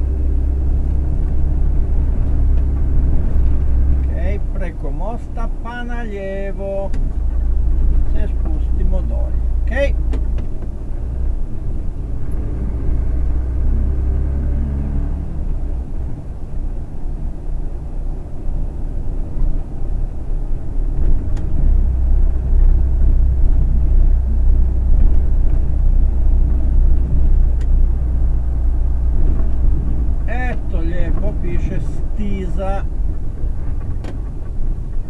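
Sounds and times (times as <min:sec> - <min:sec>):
vehicle engine and road rumble: 0:00.0 - 0:35.0.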